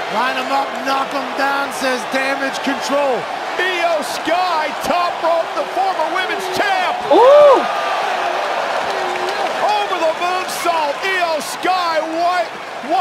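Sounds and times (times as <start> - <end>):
arena crowd din: 0.0 - 13.0
excited commentary voices: 0.1 - 7.7, 9.0 - 13.0
loud drawn-out shout: 2.9 - 13.0.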